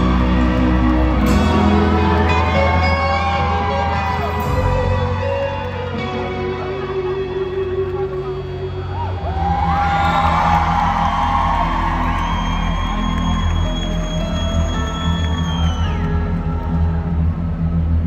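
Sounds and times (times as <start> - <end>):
crowd whooping: 0.0 - 6.0, 7.1 - 18.0
live concert music with heavy bass: 0.0 - 18.0.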